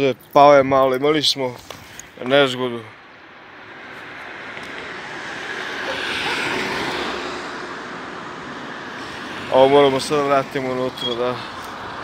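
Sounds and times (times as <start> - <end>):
vehicle passing: 2.2 - 12.0.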